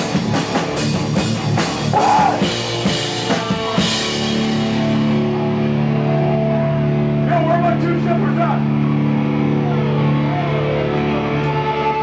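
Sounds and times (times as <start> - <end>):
electric guitar and bass droning chord: 0.0 - 12.0
person shouting: 1.9 - 2.6.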